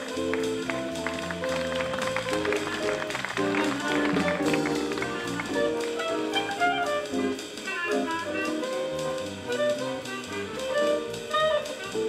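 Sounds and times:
clarinet melody: 0:00.0 - 0:12.0
jazz ensemble playing: 0:00.0 - 0:12.0.

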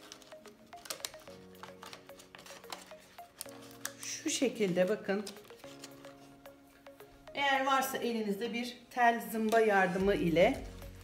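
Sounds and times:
plastic band crinkling: 0:00.0 - 0:07.0
soft background music: 0:00.0 - 0:11.0.

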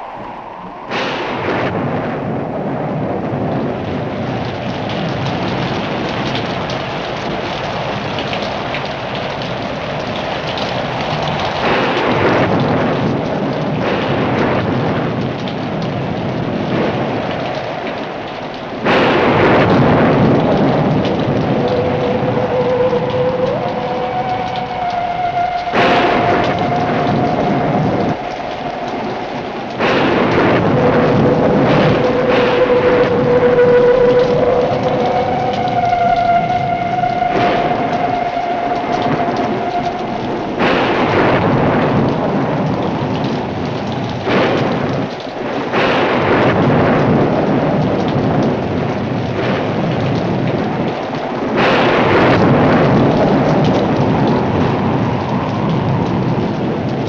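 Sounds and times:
heavy rain: 0:00.0 - 0:57.0
thunder crashes: 0:00.0 - 0:57.0.

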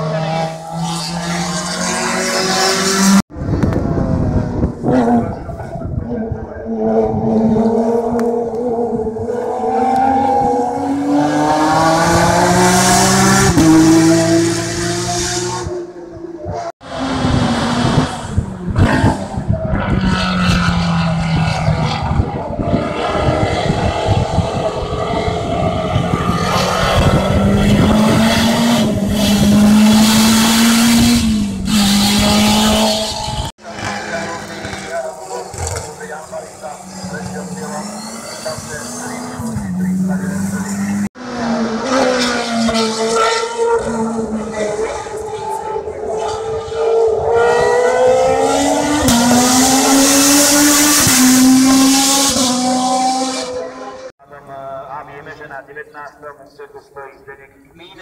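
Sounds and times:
race car engines at full throttle: 0:00.0 - 0:58.0.

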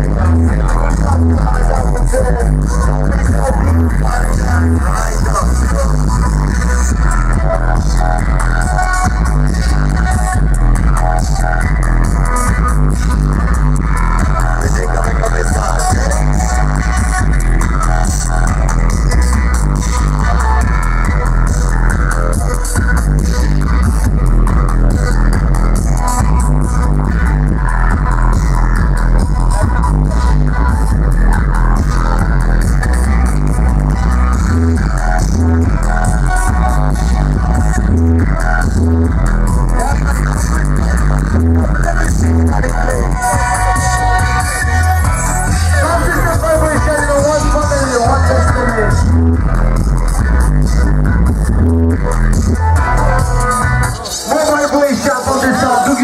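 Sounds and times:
loud music with heavy bass: 0:00.0 - 0:56.0.

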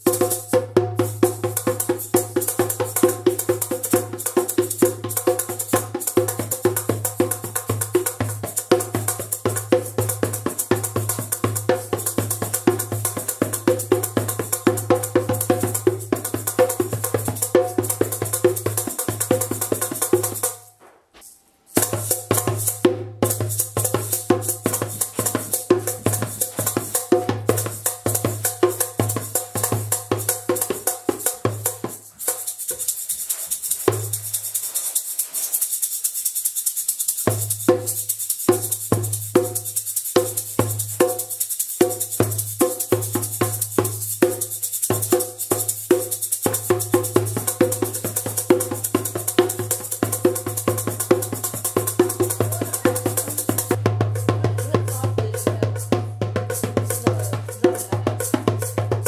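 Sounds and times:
djembe drumming: 0:00.0 - 0:20.6, 0:21.8 - 0:34.8, 0:37.2 - 0:59.0
rattling shaker: 0:00.0 - 0:59.0.

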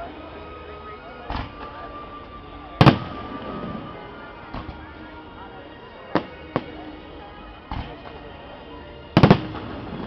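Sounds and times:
fireworks bursting: 0:02.5 - 0:05.0, 0:09.2 - 0:10.0.

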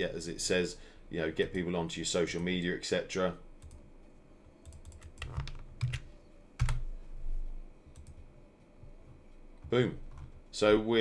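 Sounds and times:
computer keyboard typing: 0:04.6 - 0:06.9.

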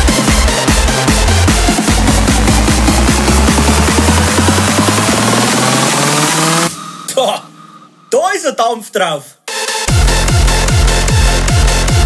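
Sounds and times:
hardstyle dance music: 0:00.0 - 0:12.0.

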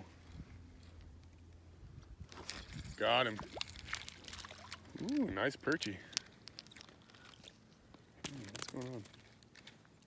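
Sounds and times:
small handling noises: 0:03.5 - 0:10.0.

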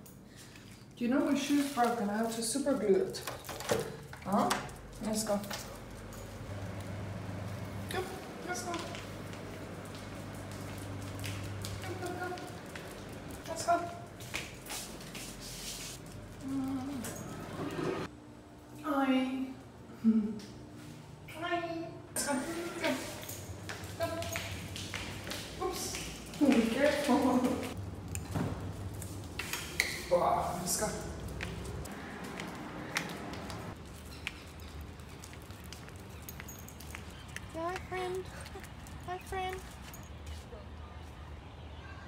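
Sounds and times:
woman murmuring: 0:16.4 - 0:17.1
flip-flop footsteps on tiles: 0:23.6 - 0:30.1.

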